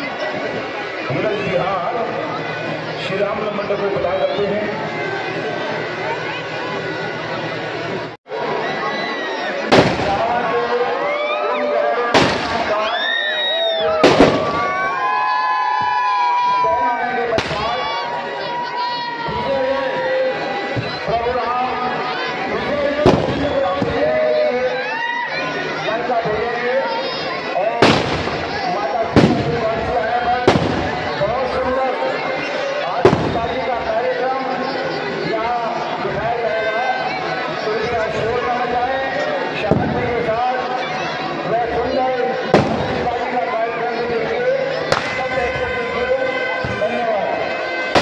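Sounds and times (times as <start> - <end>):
crowd shouting and chatter: 0.0 - 48.0
firecracker bang: 9.7 - 10.4, 12.1 - 12.8, 14.0 - 14.8, 17.4 - 17.8, 23.0 - 24.0, 27.8 - 31.2, 33.0 - 33.6, 42.5 - 43.1, 44.9 - 45.2.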